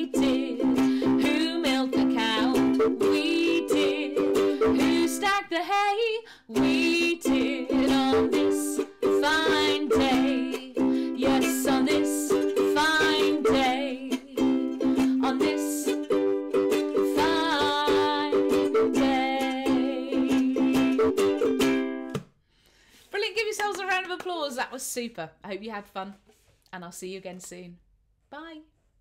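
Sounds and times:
ukulele strumming: 0.0 - 22.3.

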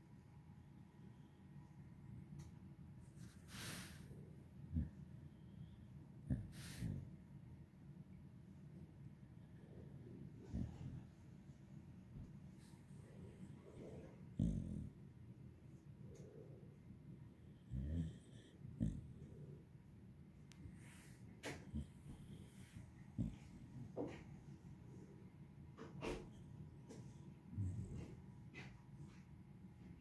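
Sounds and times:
dog breathing and snuffling: 6.3 - 7.1, 20.7 - 24.9, 25.8 - 29.3
dog growling: 13.6 - 15.0, 17.6 - 19.5.

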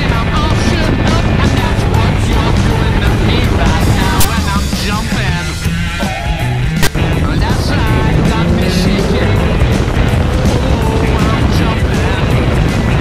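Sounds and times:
car engine running: 0.0 - 13.0
road noise: 0.0 - 13.0
rock song with male vocals: 0.0 - 13.0.

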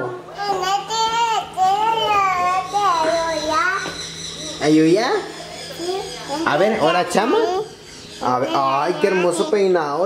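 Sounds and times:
baby crying: 7.2 - 9.9.

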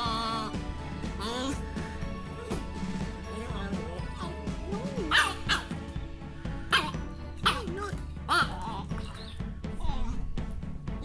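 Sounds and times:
dog barking: 5.1 - 5.8, 6.7 - 8.5.

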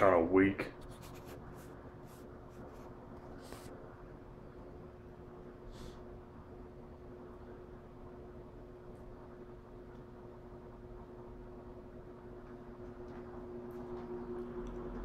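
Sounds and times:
desk fan motor hum: 0.0 - 15.0
fan air rushing: 0.0 - 15.0
lower hum: 0.0 - 15.0.

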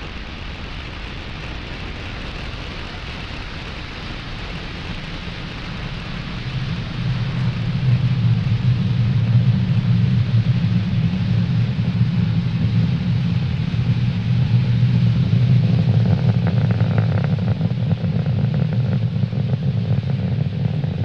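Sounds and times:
rocket engine crackle: 0.0 - 21.0
rocket engines rumbling: 0.0 - 21.0.

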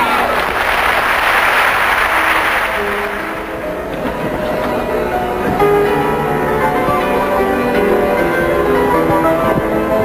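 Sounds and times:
crowd applause: 0.0 - 4.2
melody of held notes: 2.2 - 10.0.

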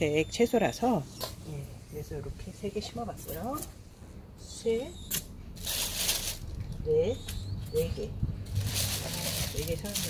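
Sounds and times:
seedling rustling: 5.6 - 6.6, 8.5 - 10.0.

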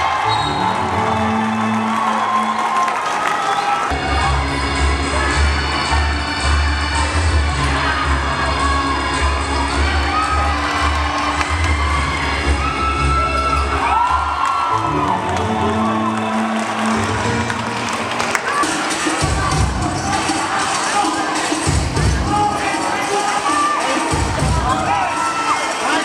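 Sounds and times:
crowd cheering and shouting: 0.0 - 26.0
music with heavy beat: 18.0 - 26.0.

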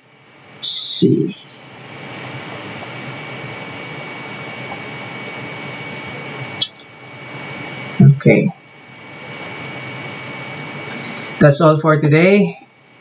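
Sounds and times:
steady hiss: 0.0 - 13.0
thin high whine: 0.0 - 13.0.

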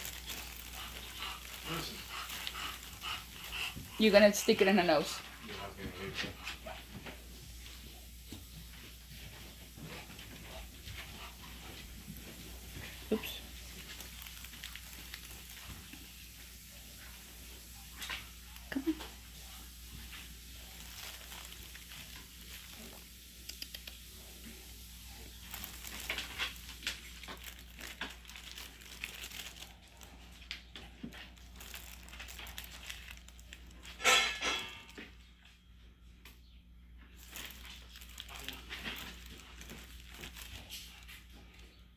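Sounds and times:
dog mouthing stuffed toys: 0.0 - 6.8
soft crinkling and rustling: 0.0 - 41.9.

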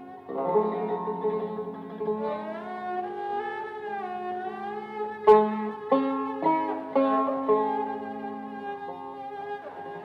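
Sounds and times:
sharply plucked notes: 0.0 - 10.0
sliding lute melody: 0.0 - 10.0.

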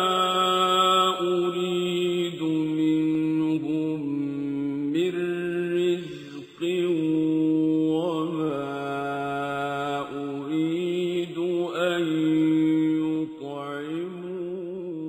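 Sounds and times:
man chanting melodically: 0.0 - 15.0.

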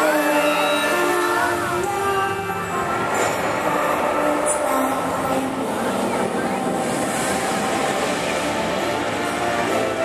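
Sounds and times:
faint orchestral music: 0.0 - 10.0
fountain jets hissing: 0.0 - 10.0.

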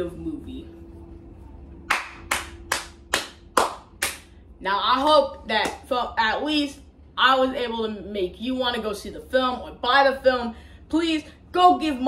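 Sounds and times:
person clapping hands: 1.9 - 4.3.

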